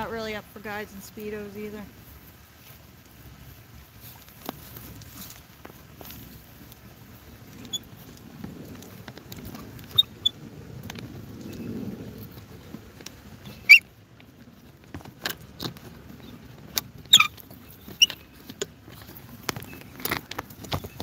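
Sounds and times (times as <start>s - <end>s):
short squeaks: 9.9s - 10.4s, 13.4s - 13.9s, 17.0s - 18.4s.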